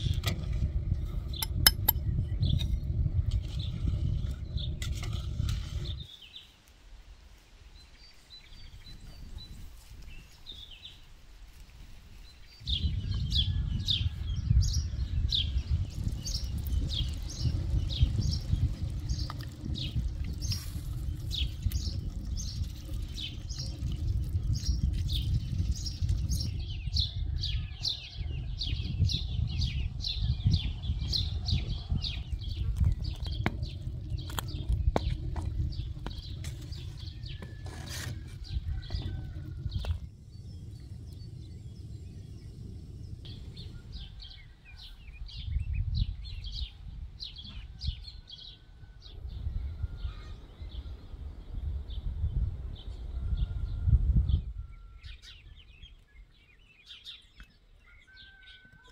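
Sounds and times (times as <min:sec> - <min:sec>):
small birds chirping: 0:07.6 - 0:53.6
low rumble: 0:12.7 - 0:47.4.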